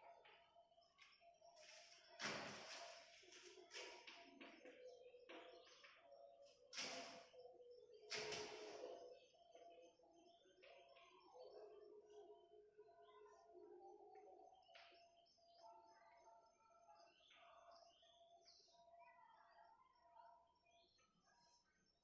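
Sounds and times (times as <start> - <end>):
faint bird chirps: 0.0 - 22.0.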